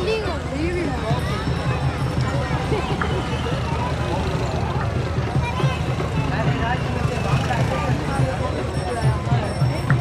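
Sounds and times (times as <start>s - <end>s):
crowd of men talking: 0.0s - 10.0s.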